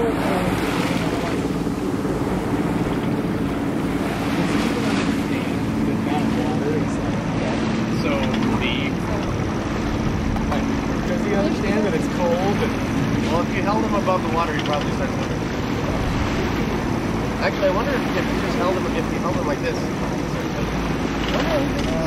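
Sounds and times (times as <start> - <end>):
faint voices: 0.0 - 22.0
steady low hum: 0.0 - 22.0
water rushing past hull: 0.0 - 22.0
wind buffeting microphone: 0.0 - 22.0.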